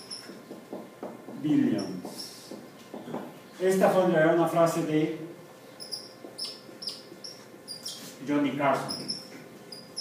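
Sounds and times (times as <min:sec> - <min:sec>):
marker squeaking on whiteboard: 0:00.0 - 0:00.8, 0:01.6 - 0:03.2, 0:05.8 - 0:10.0.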